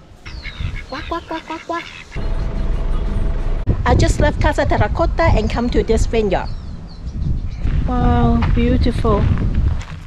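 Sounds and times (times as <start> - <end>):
wind rumble on microphone: 0.2 - 1.0, 2.2 - 10.0
ducks quacking: 0.2 - 3.3.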